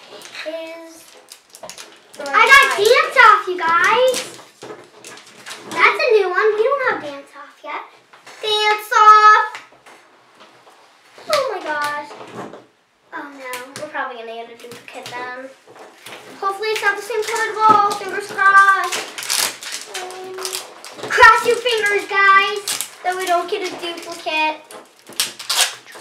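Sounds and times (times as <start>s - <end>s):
plastic wrapping crackling and tearing: 0.0s - 6.8s, 14.5s - 26.0s
girls talking: 0.4s - 1.1s, 2.2s - 4.4s, 5.7s - 9.6s, 11.3s - 12.1s, 13.1s - 15.6s, 16.4s - 19.1s, 19.8s - 24.7s.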